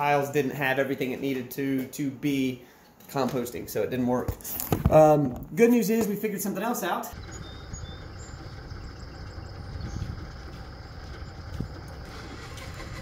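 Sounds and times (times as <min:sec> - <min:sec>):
diesel engine running: 0:07.2 - 0:13.0.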